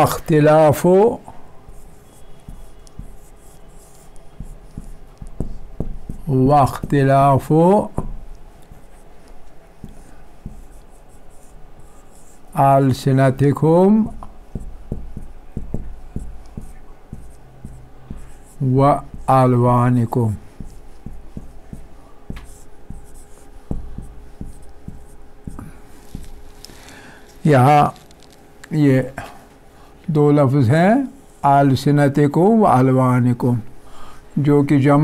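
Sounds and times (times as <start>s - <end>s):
marker scratching on whiteboard: 0.0s - 26.7s
marker tip ticks: 1.7s - 6.2s.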